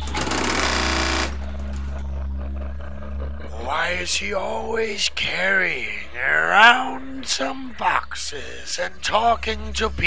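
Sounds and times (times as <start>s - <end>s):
sewing machine stitching: 0.0s - 1.4s
steady low hum: 0.0s - 10.0s.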